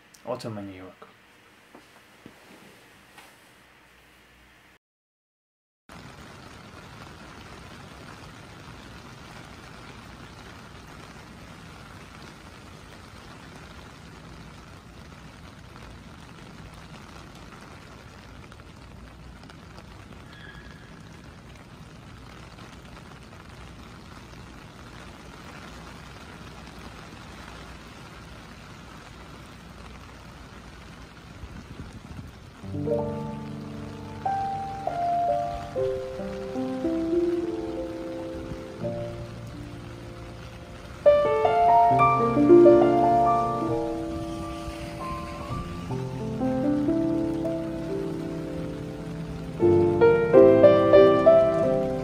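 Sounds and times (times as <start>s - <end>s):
rain hissing on street: 0.0s - 4.8s, 5.9s - 52.0s.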